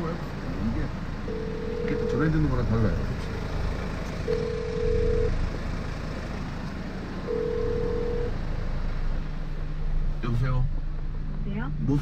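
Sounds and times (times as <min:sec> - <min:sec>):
low steady rumble: 0:00.0 - 0:12.0
telephone ringback beeps: 0:01.3 - 0:02.3, 0:04.3 - 0:05.3, 0:07.3 - 0:08.3.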